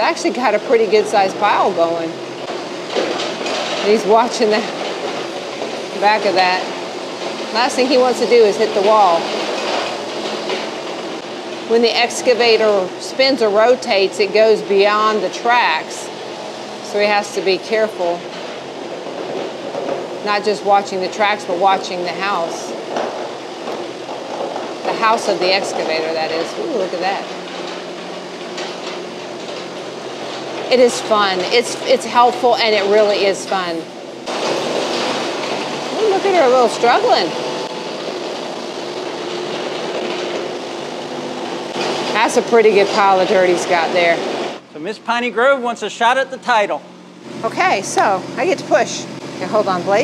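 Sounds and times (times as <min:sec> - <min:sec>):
excavator diesel engine running: 0:00.0 - 0:50.0
tracks rolling: 0:00.0 - 0:50.0.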